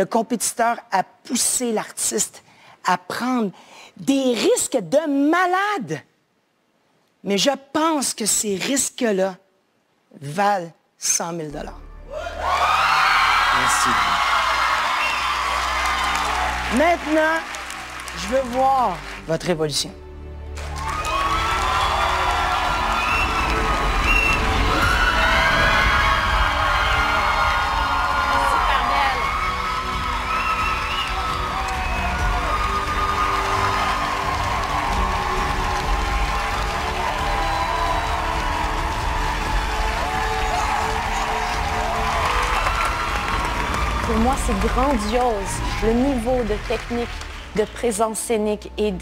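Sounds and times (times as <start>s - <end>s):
music playing: 11.7s - 49.0s
audience cheering and whooping: 12.1s - 18.1s, 20.6s - 46.4s.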